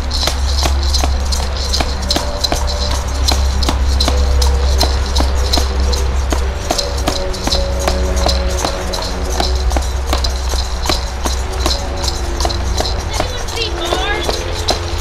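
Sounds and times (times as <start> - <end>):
drums beating steady rhythm: 0.0 - 15.0
held melody notes: 0.0 - 15.0.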